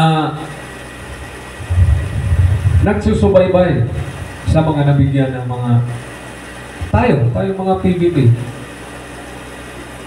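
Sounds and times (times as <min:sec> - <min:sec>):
loud low microphone rumble: 0:01.0 - 0:06.1
man speaking: 0:02.8 - 0:05.4.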